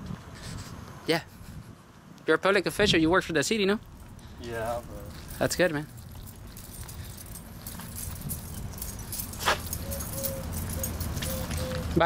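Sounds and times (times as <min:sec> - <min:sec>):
keys jangling on a belt: 0:03.8 - 0:11.9.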